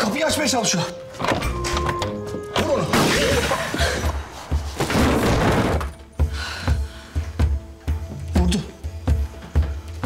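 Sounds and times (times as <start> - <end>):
tense dramatic music: 0.0 - 10.0.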